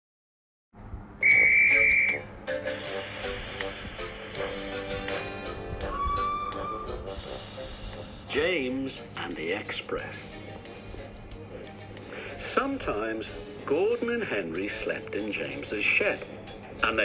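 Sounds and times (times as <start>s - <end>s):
steam locomotive whistle: 1.2s - 4.8s, 5.8s - 7.9s
steam hissing: 1.2s - 5.2s, 6.6s - 8.4s.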